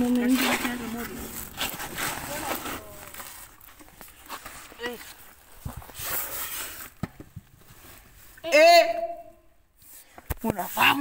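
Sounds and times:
rustling against concrete pipe: 0:00.0 - 0:08.4.

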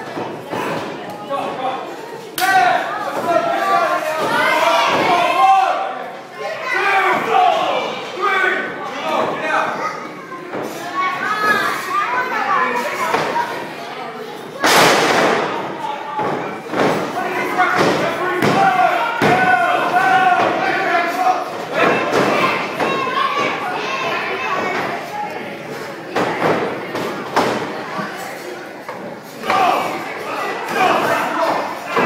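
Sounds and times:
voices shouting: 0:02.4 - 0:10.2, 0:17.2 - 0:25.0.

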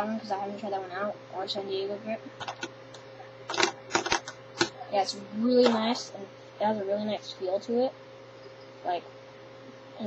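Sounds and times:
fingerboard clacking on desktop: 0:02.4 - 0:02.7, 0:03.5 - 0:04.7.

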